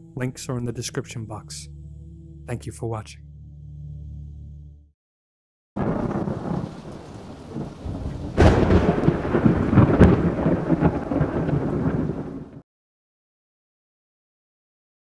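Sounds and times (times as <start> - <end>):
rain: 5.8 - 12.6
rumbling thunder: 5.8 - 12.6
sharp thunderclap: 5.8 - 12.6.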